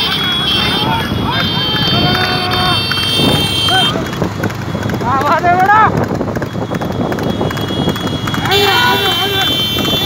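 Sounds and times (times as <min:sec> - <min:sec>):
people shouting: 0:00.0 - 0:04.2, 0:08.3 - 0:10.0
motorcycle engines running: 0:00.0 - 0:10.0
wind rushing on microphone: 0:00.6 - 0:10.0
pony galloping: 0:00.8 - 0:10.0.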